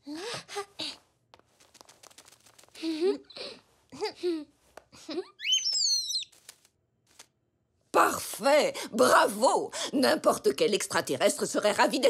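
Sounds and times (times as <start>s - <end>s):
cartoon bird chirping: 5.4s - 6.4s.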